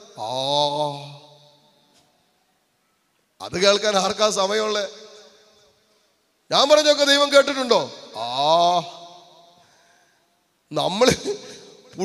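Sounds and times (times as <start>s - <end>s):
man's voice through microphone: 0.0s - 2.1s, 3.4s - 9.6s, 10.6s - 12.0s.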